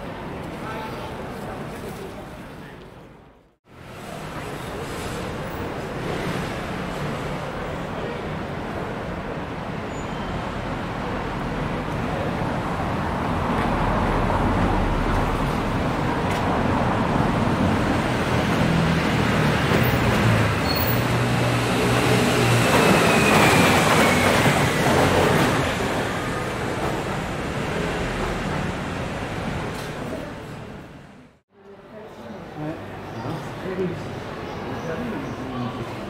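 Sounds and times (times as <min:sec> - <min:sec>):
road traffic passing: 0:00.0 - 0:36.0.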